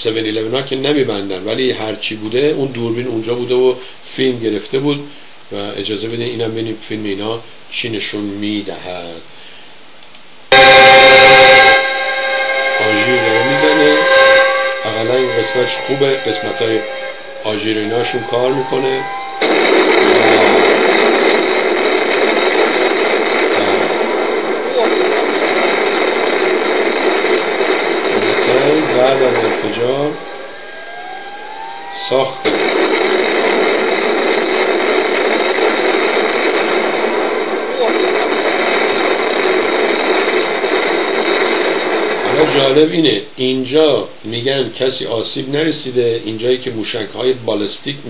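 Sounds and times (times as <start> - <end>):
loud static hiss: 0.0 - 48.0
loud steady rushing noise: 10.5 - 43.0.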